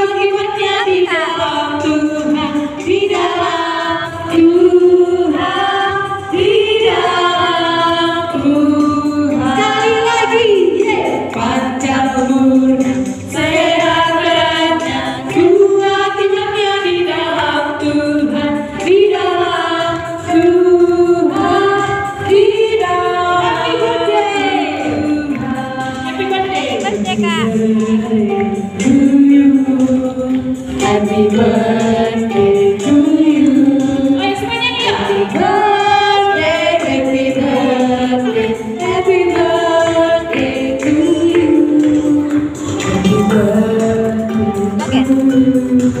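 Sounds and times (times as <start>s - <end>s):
children singing: 0.0s - 46.0s
woman singing amplified: 0.0s - 46.0s.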